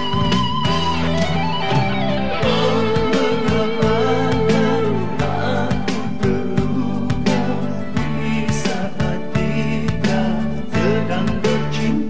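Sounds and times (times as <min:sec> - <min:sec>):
electric lead guitar sliding: 0:00.0 - 0:06.8
bass guitar: 0:00.0 - 0:12.0
drums: 0:00.0 - 0:12.0.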